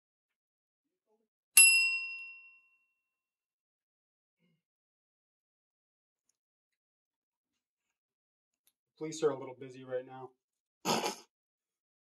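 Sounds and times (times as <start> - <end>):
bell-like ding: 1.6 - 2.9.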